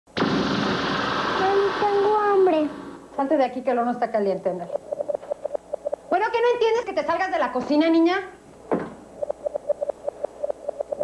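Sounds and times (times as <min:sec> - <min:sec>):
steady hiss: 0:00.2 - 0:03.6.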